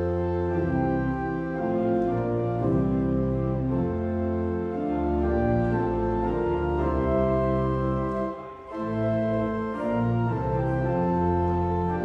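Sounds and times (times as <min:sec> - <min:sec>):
organ playing sustained chords: 0:00.0 - 0:12.0.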